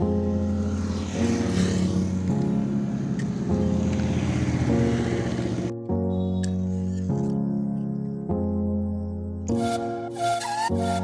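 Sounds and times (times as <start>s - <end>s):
background music low chords: 0.0s - 11.0s.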